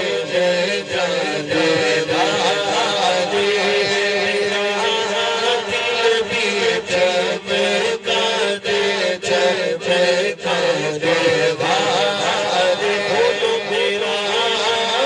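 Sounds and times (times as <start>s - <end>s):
man singing devotional hymn: 0.0s - 15.0s.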